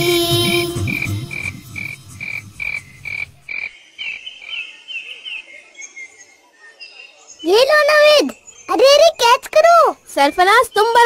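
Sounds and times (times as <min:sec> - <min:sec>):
children's song music: 0:00.0 - 0:03.4
frogs croaking: 0:00.5 - 0:04.8.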